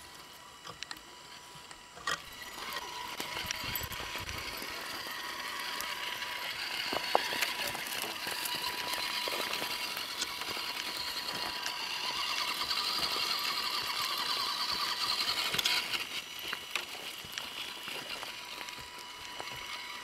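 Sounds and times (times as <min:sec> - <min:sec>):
electric motor and gears whining: 0:00.0 - 0:20.0.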